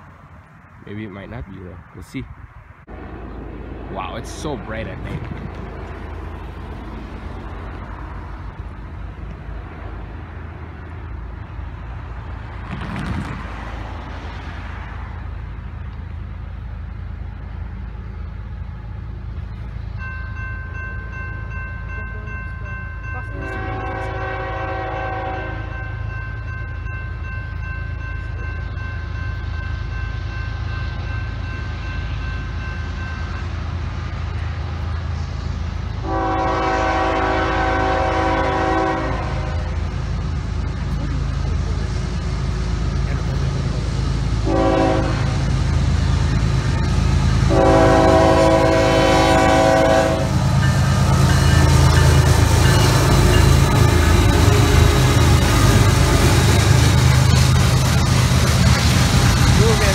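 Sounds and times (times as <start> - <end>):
low rumble of approaching train: 0.0 - 59.9
locomotive air horn blasts: 23.4 - 25.8, 36.0 - 39.8, 44.4 - 45.4, 47.5 - 50.6.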